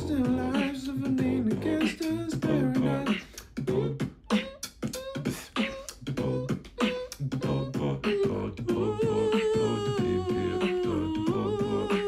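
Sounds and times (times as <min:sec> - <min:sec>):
vocal kick and snare beat: 0:00.0 - 0:12.0
hummed melody: 0:03.7 - 0:12.0.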